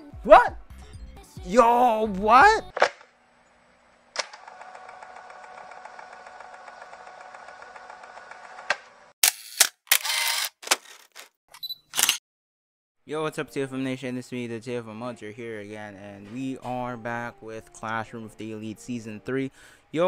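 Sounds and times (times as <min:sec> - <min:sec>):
short bursts of mechanical noise: 0:09.2 - 0:10.6
camera click: 0:09.2 - 0:10.8, 0:12.0 - 0:12.2
sharp shutter clicks: 0:09.2 - 0:11.3, 0:11.9 - 0:12.2.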